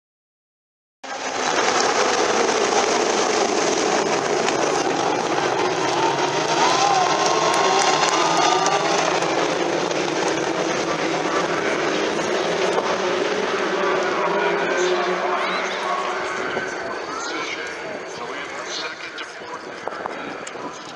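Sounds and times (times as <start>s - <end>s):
race car engines roaring: 1.0s - 20.9s
race cars passing by: 1.0s - 20.9s.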